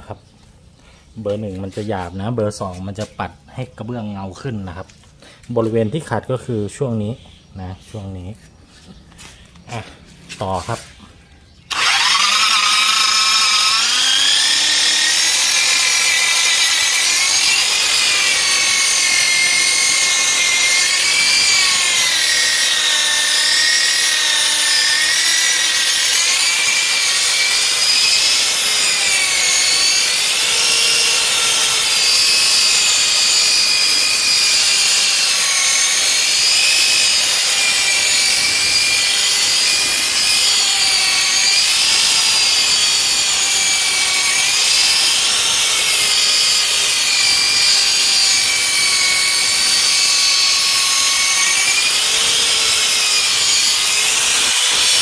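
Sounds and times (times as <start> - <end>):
electric polisher whining: 11.7 - 55.0.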